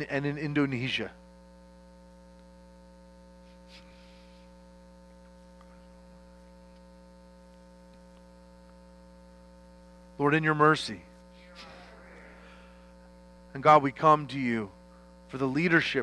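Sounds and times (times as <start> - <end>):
electrical mains hum: 0.0 - 16.0.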